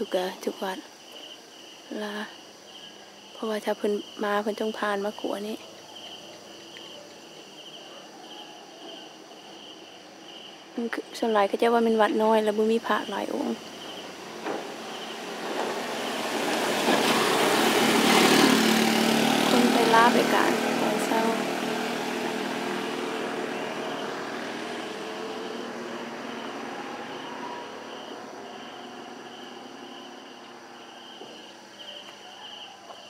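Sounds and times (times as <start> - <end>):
insects chirping: 0.0 - 33.0
motor vehicle passing: 12.9 - 33.0.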